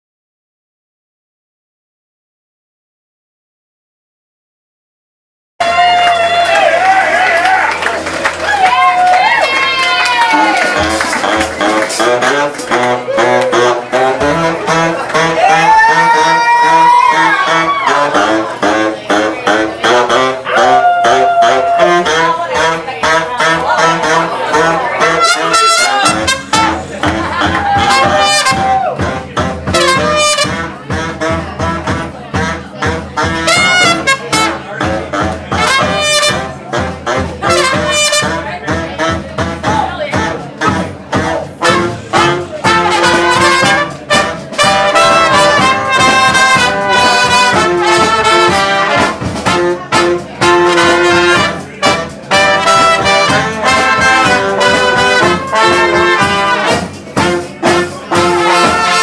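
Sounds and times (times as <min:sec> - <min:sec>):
funk brass band playing: 0:05.6 - 0:59.0
horns holding long notes: 0:05.6 - 0:59.0
trumpet and saxophone stabs: 0:05.6 - 0:59.0
drum kit beat: 0:07.2 - 0:59.0
sousaphone and bass guitar: 0:10.2 - 0:59.0.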